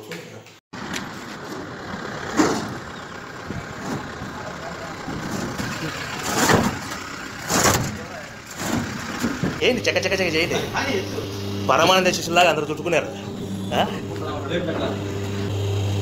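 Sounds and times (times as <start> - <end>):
street noise: 0.0 - 16.0
truck engine running: 0.8 - 16.0.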